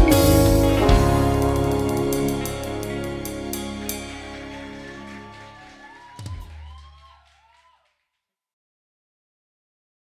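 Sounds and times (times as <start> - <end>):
deep low note: 0.0 - 5.1
band final chord ringing: 0.0 - 5.6.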